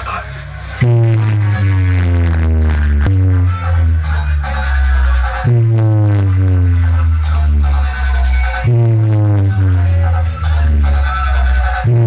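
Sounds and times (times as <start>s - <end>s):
heavy-bass electronic music: 0.0s - 12.0s.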